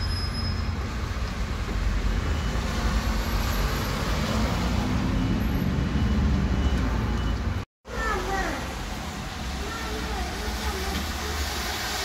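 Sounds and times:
bus engine rumble: 0.0 - 12.0.

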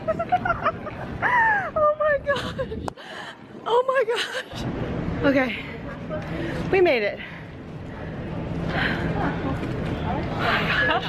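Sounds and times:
airport terminal hum and murmur: 0.0 - 11.0.

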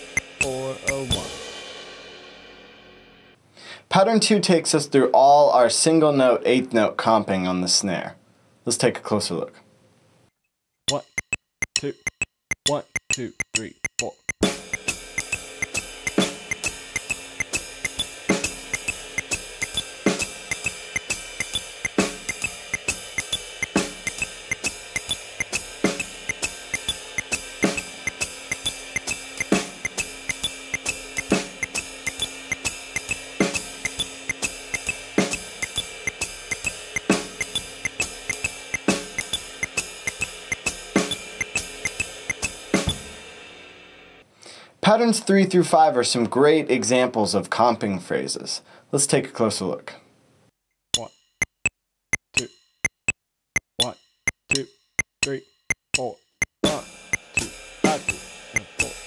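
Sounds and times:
jazz drum kit swing groove: 0.0 - 2.5, 11.2 - 43.7, 52.4 - 59.0.

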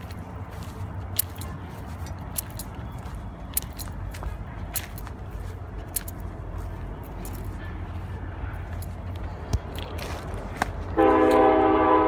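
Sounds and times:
handling clicks and crackles: 0.0 - 11.6.

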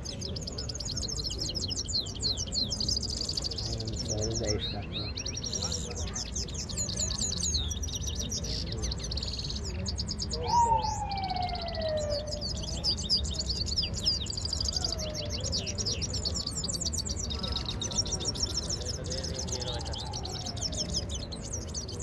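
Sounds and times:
goldfinches twittering and trilling: 0.0 - 22.0.

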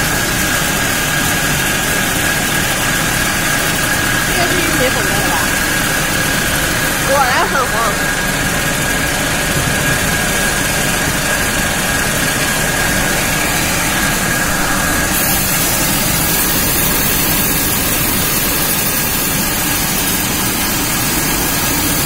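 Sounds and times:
production-line machinery running: 0.0 - 22.0
thin steady whine: 2.1 - 21.5.

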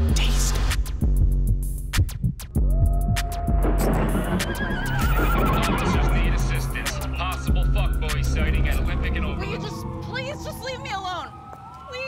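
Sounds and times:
steady low bass: 0.0 - 4.4, 5.0 - 9.4
horse whinnying: 4.2 - 6.2.

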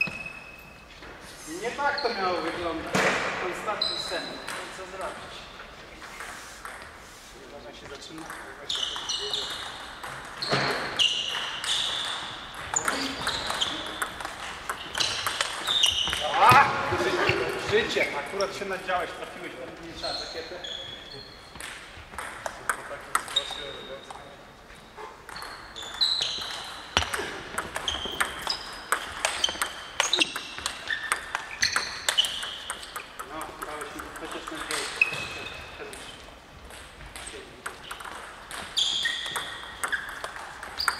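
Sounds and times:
table tennis balls clicking: 6.2 - 7.0, 8.1 - 16.3, 21.5 - 24.2, 25.2 - 40.9
table tennis ball clicking: 26.4 - 34.8, 36.8 - 40.9
distant table tennis ball clicks: 26.4 - 35.0, 36.7 - 40.9.

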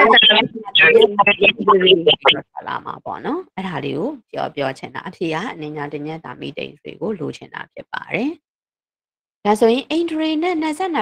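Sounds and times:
person talking over video call: 0.0 - 8.4.

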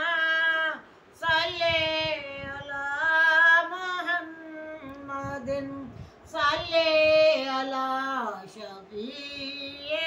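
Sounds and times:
woman singing devotional song: 0.0 - 10.0.

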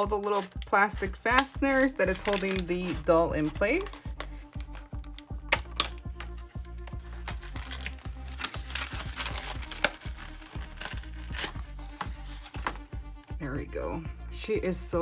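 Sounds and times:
scissors snipping plastic: 0.0 - 12.8
plastic packaging crinkling: 0.0 - 12.9
background music with steady beat: 0.0 - 15.0.

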